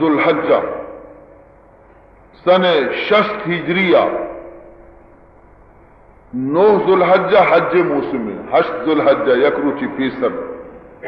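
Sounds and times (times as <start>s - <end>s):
man speaking: 0.0s - 0.8s, 2.4s - 4.4s, 6.3s - 10.6s
faint background hiss: 0.0s - 11.0s.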